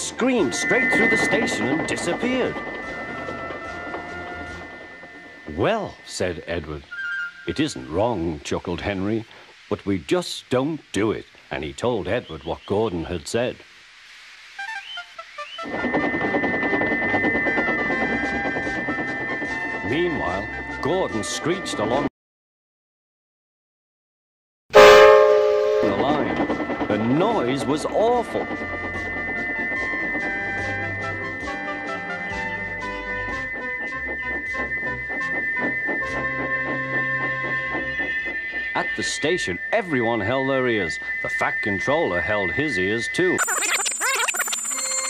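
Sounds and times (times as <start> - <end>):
steam locomotive whistle shrieking: 0.0 - 6.2, 24.8 - 45.0
loud rushing train noise: 0.0 - 8.0, 15.6 - 21.8, 24.8 - 43.2.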